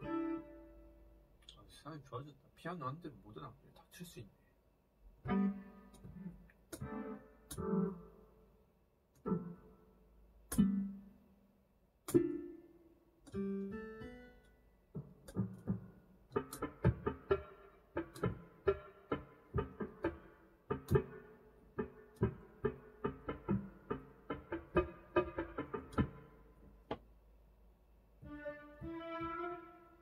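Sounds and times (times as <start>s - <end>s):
digital piano chords and runs: 0.0s - 1.4s, 5.1s - 8.6s, 9.2s - 11.2s, 12.0s - 26.9s, 28.1s - 30.0s.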